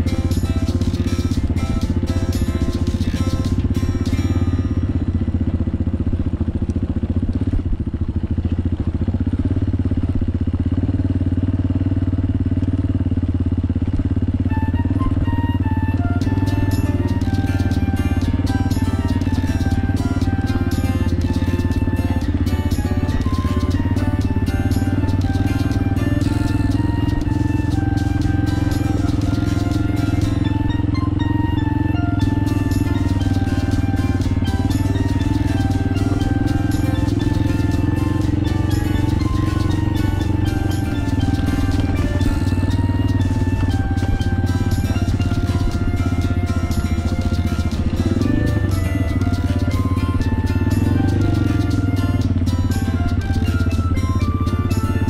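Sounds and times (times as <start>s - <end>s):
background music: 0.0s - 6.0s, 14.4s - 55.0s
melody of short notes: 0.0s - 6.0s, 14.5s - 55.0s
motorbike engine running: 0.0s - 55.0s.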